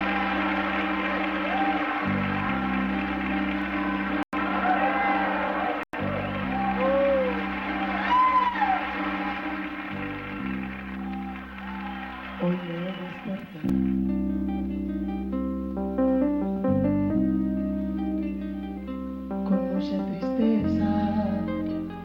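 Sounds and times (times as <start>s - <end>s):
live band held chords: 0.0s - 12.0s
rising and falling calls: 0.0s - 12.8s.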